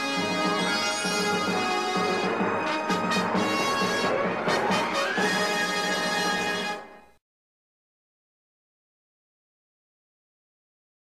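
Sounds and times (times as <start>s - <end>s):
intro music: 0.1s - 7.0s.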